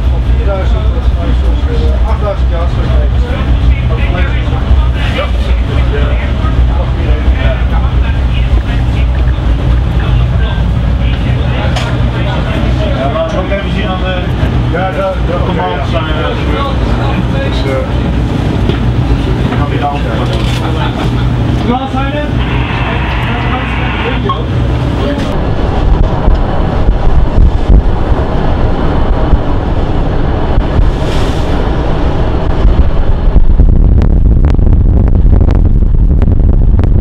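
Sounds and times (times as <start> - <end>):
voices: 0.0 - 26.9
wind buffeting microphone: 0.0 - 37.0
sea rushing: 2.0 - 34.0.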